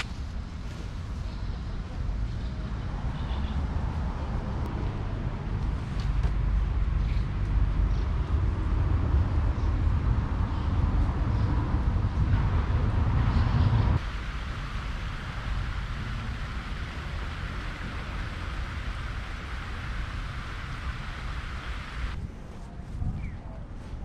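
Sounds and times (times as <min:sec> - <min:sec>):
distant traffic: 0:00.0 - 0:22.2
wind rumble on microphone: 0:00.0 - 0:24.0.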